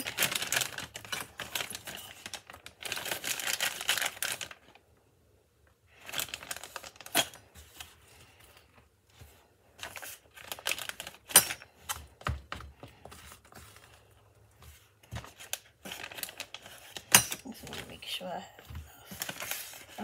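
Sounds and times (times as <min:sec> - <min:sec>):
plastic bag crinkling: 0:00.0 - 0:04.8, 0:05.9 - 0:08.6, 0:09.8 - 0:12.1, 0:14.9 - 0:20.0.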